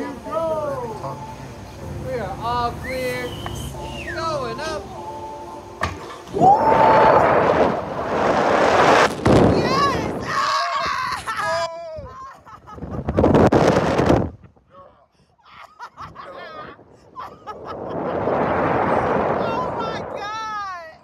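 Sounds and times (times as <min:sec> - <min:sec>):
wind rushing over microphone: 0:06.3 - 0:10.5, 0:12.7 - 0:14.6, 0:16.0 - 0:21.0.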